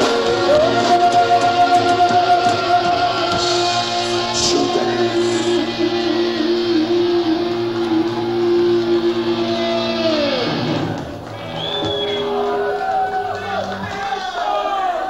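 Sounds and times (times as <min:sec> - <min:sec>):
rock band sustained chord: 0:00.0 - 0:11.3
crowd shouting: 0:00.0 - 0:15.0.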